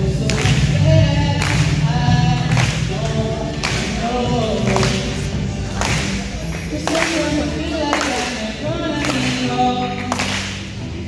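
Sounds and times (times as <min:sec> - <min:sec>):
music: 0:00.0 - 0:11.0
person singing into microphone: 0:00.0 - 0:11.0.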